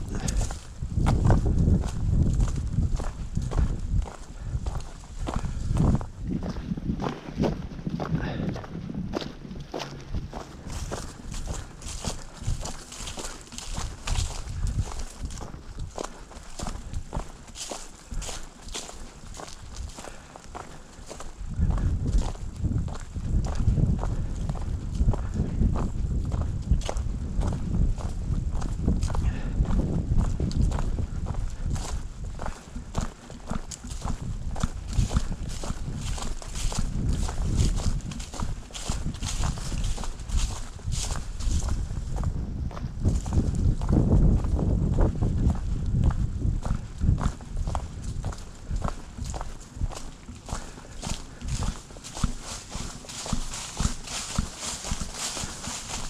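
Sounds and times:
footsteps crunching on dirt trail: 0.0 - 56.0
wind buffeting microphone: 0.0 - 56.0.

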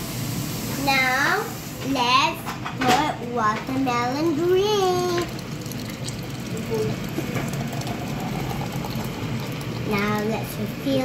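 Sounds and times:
thick juice pouring over ice: 4.1 - 10.8.

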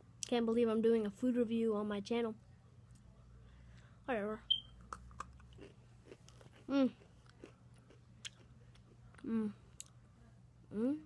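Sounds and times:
mouth chewing cookie: 4.8 - 10.0
hummed mmm: 10.7 - 11.0.

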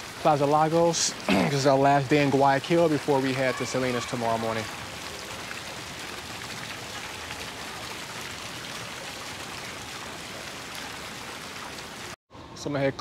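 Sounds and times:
fountain jets splashing: 0.0 - 12.2.

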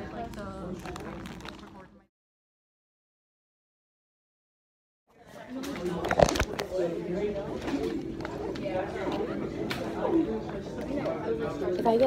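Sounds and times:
voices talking quietly: 5.1 - 12.0.

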